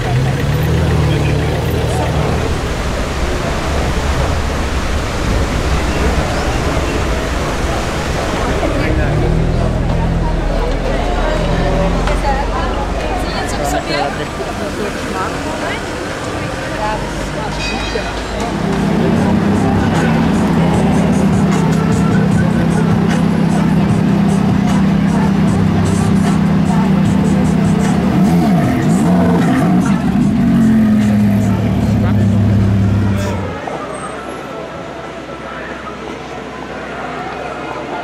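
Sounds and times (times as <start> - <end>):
sports car engine running: 18.6 - 33.6.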